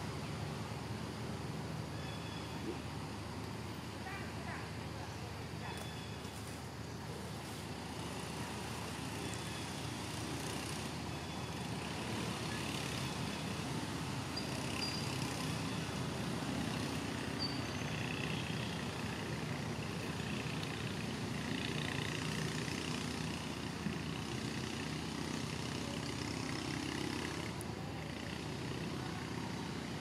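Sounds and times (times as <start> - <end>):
faint high chirps: 14.3 - 15.9, 17.3 - 18.7.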